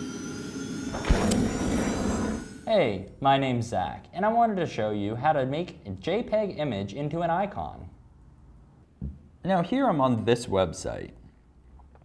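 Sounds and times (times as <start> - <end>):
bright hiss: 0.0 - 2.8
sharp low thump: 0.9 - 2.4.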